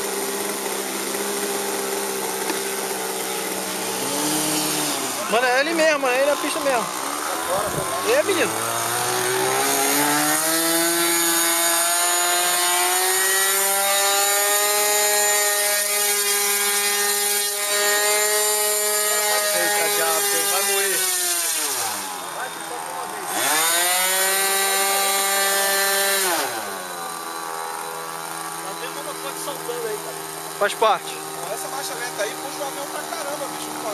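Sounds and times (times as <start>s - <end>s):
model airplane engine revving: 0.0s - 33.9s.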